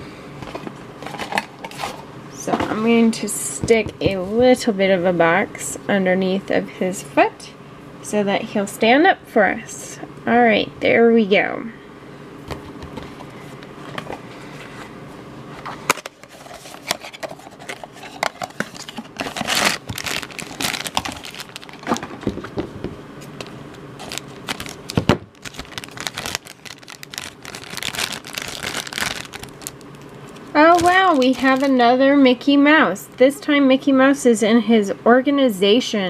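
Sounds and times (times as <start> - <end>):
foil bag crinkling: 16.2 - 22.5, 23.3 - 32.0.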